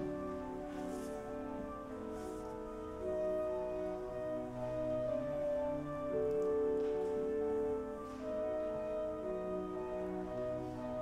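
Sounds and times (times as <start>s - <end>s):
church organ chords: 0.0s - 11.0s.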